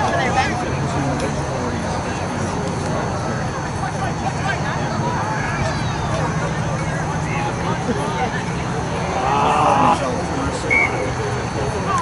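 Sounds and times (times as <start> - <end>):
players shouting: 8.8 - 11.2.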